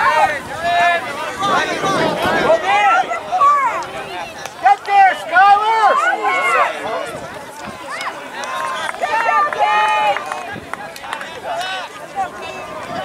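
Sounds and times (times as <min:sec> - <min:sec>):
people shouting and calling out: 0:00.0 - 0:13.0.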